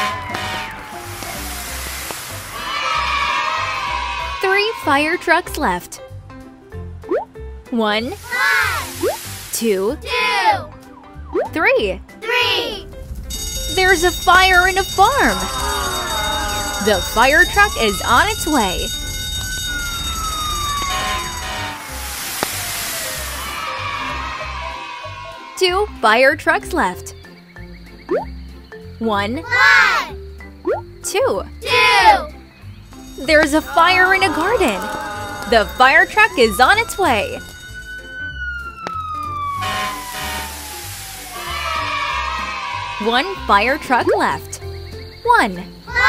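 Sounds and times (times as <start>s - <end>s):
cartoon siren sliding down: 0.0s - 2.1s, 13.3s - 24.7s, 33.1s - 43.5s
hissing rush: 0.0s - 4.0s, 8.1s - 9.7s, 12.7s - 24.3s, 39.5s - 42.9s
children's music with low beat: 0.0s - 22.2s, 22.9s - 46.0s
hissing whoosh: 0.7s - 2.9s, 21.8s - 23.8s, 39.9s - 41.8s.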